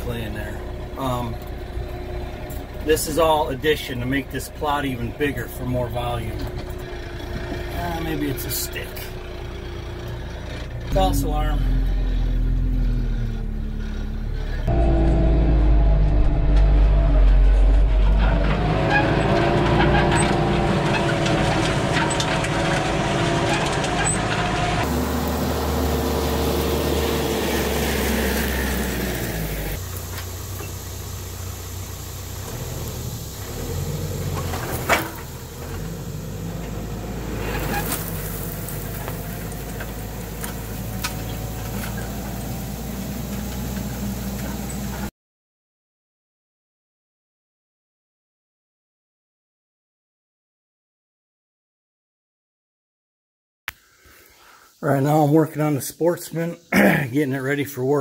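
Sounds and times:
tractor diesel engine running: 0.0 - 45.1.

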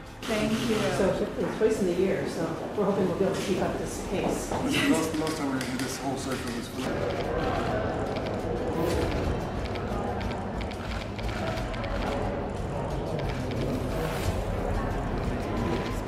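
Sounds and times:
crowd chatter: 0.0 - 16.0
music: 0.0 - 16.0.

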